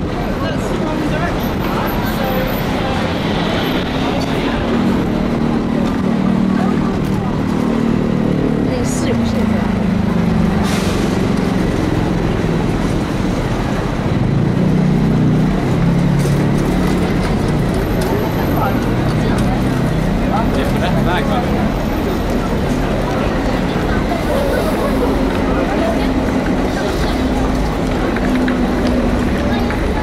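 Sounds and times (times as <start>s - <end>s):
people talking indistinctly: 0.0s - 13.1s, 17.2s - 30.0s
road traffic passing: 0.0s - 30.0s.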